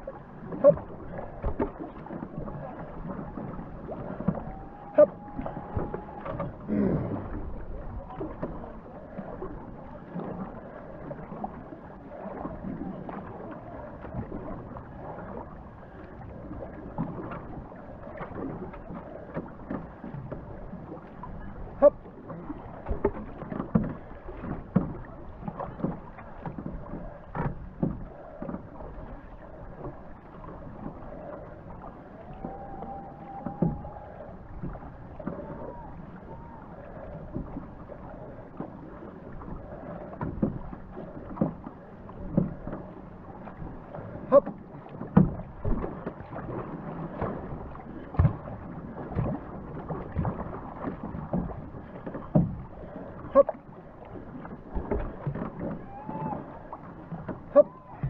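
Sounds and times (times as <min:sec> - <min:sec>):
paddles splashing in water: 0:00.0 - 0:58.0
water rushing along hull: 0:00.0 - 0:58.0.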